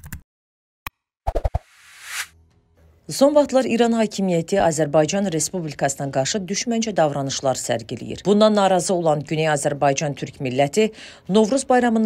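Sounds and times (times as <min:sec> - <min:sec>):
whoosh: 0:01.3 - 0:02.3.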